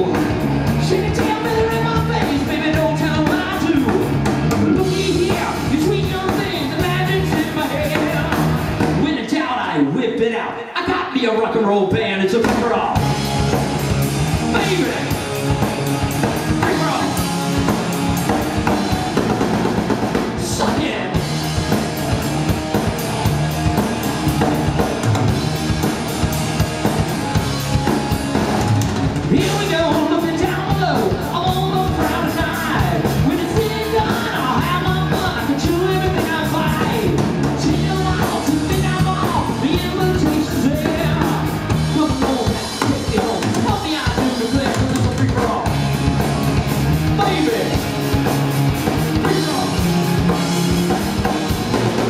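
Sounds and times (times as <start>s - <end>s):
electric guitars: 0.0s - 9.1s, 13.0s - 52.0s
drum kit with cymbals: 0.0s - 9.3s, 12.4s - 52.0s
bass guitar: 0.0s - 52.0s
lead vocal singing: 29.3s - 45.8s.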